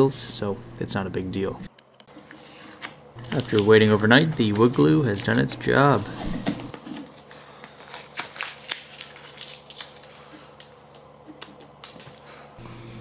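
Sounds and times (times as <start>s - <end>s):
tape being peeled off: 7.8s - 10.7s.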